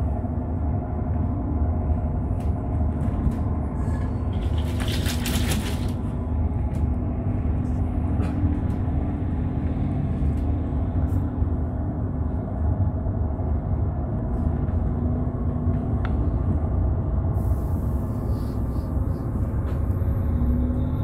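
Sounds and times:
bus engine rumble: 0.0s - 21.0s.

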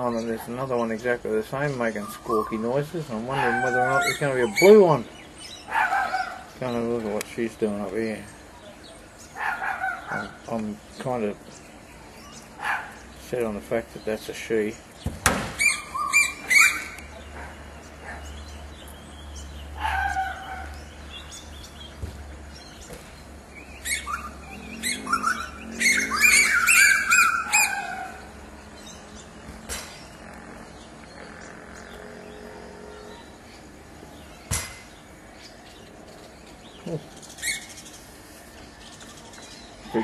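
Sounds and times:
birds calling: 0.0s - 40.0s
squawky bird chirps: 1.7s - 6.7s, 15.6s - 17.5s, 23.6s - 33.7s, 36.8s - 38.1s.

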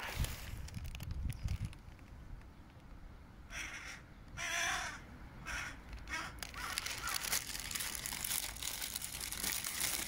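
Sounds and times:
bird cawing: 3.5s - 7.5s.

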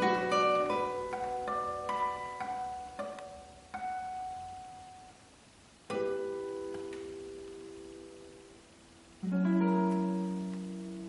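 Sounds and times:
nylon-string guitar chord: 0.0s - 5.0s, 5.9s - 11.0s.

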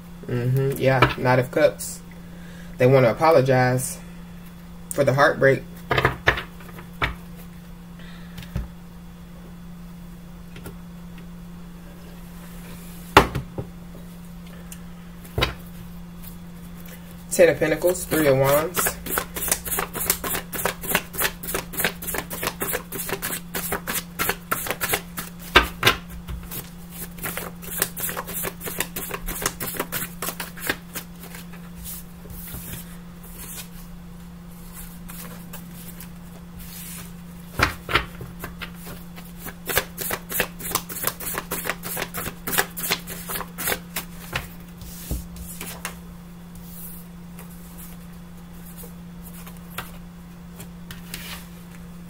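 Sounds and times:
cards being shuffled: 18.1s - 25.8s, 26.4s - 33.8s, 34.6s - 46.0s.

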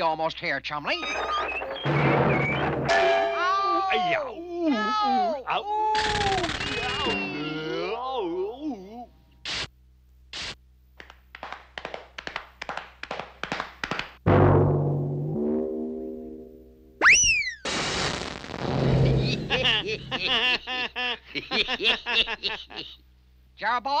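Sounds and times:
cartoon knocks: 1.1s - 3.5s
loud crash: 1.2s - 4.0s, 14.2s - 20.3s
falling whistle: 6.6s - 7.7s, 17.0s - 17.7s
twanging boing: 14.2s - 17.0s
characters laughing: 19.2s - 23.0s.

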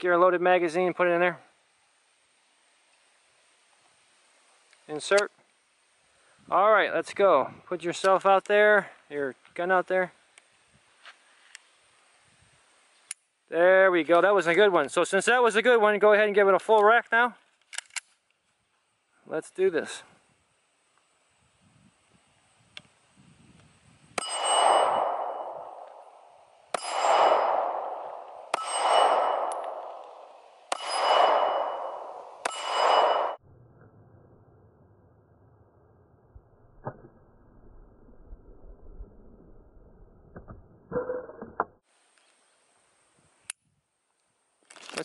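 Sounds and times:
pistol slide locking back: 17.7s - 18.2s
pistol shots ringing: 24.2s - 33.4s.

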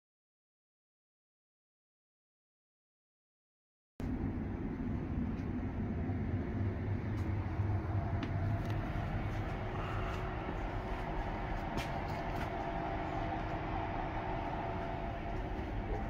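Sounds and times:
steady high whine: 4.0s - 16.0s
train equipment hum and rumble: 4.0s - 16.0s.

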